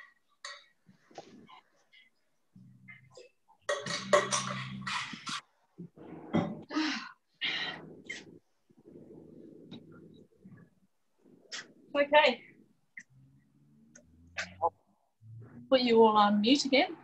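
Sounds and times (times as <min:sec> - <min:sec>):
indistinct voices over video call: 0:11.5 - 0:17.0.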